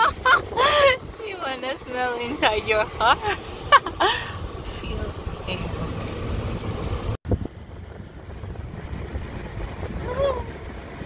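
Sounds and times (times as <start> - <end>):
car cabin rumble: 0.0 - 11.0
wind on microphone: 0.0 - 11.0.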